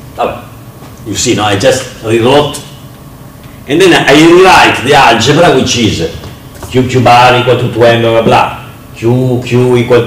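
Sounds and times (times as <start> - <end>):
man talking: 0.2 - 2.8, 3.7 - 10.0.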